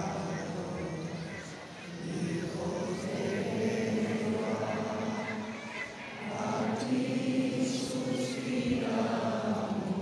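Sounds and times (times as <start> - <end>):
large crowd singing: 0.0 - 10.0.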